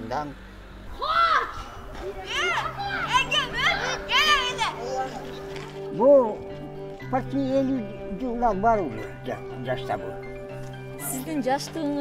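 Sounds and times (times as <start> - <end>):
children shouting at play: 0.9 - 5.5.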